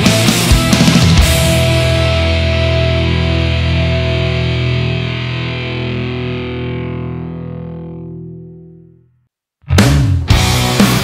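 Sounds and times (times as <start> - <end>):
distorted electric guitar chord: 0.0 - 11.0.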